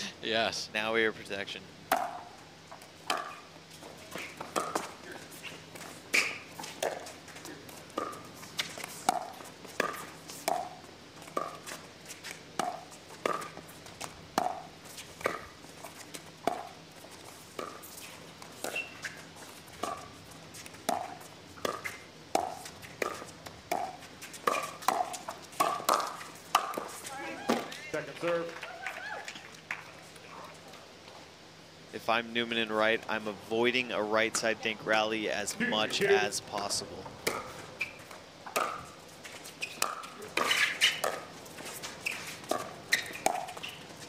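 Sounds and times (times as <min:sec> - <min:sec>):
paddles hitting plastic ball: 0:20.8 - 0:28.5.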